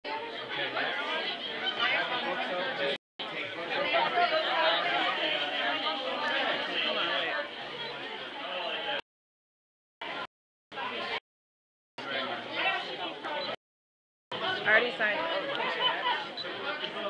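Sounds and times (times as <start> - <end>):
crowd chatter: 0.0 - 9.0, 10.0 - 11.2, 12.0 - 13.6, 14.3 - 17.0.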